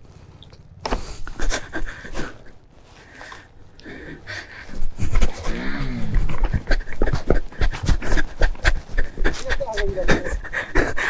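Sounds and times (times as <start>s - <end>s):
person panting hard: 0.8s - 11.0s
person groaning: 5.3s - 7.0s.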